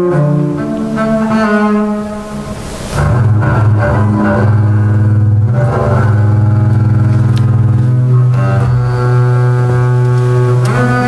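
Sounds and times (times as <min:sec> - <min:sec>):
double bass played with bow: 0:00.0 - 0:11.0.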